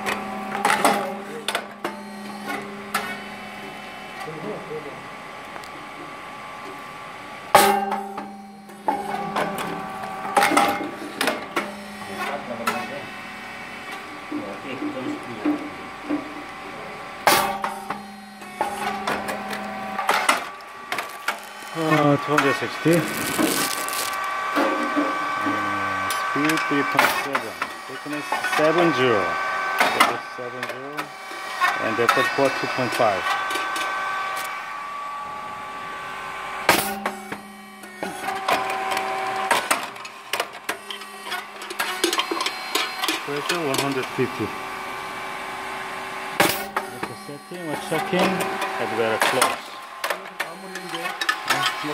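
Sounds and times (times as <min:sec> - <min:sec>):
steady machine hum: 0:00.0 - 0:51.9
rice cake machine popping: 0:17.3 - 0:25.5.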